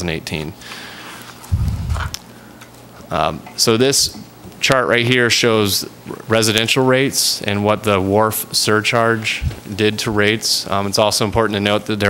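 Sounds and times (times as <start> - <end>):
short low thump: 1.5 - 2.1.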